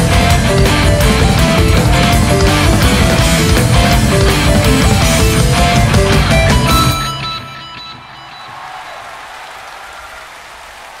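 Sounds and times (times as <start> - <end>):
rock band final chord: 0.0 - 7.2
audience applause: 8.4 - 11.0.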